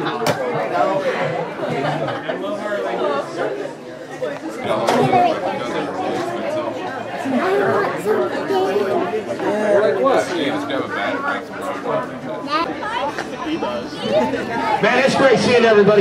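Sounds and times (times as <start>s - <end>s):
chatter of people: 0.0s - 16.0s.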